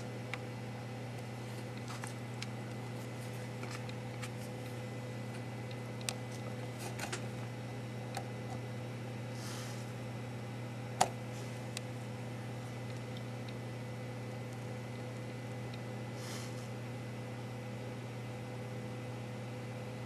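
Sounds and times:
electrical hum: 0.0 - 20.0.

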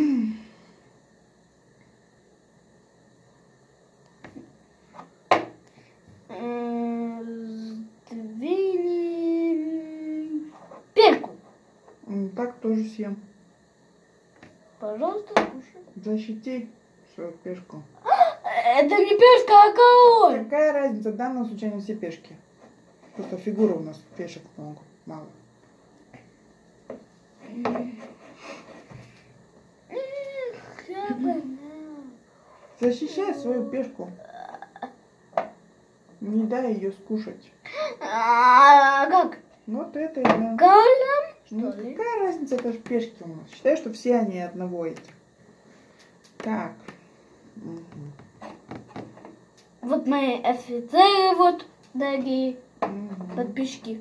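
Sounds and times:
child humming: 29.9 - 32.2, 33.3 - 35.0.

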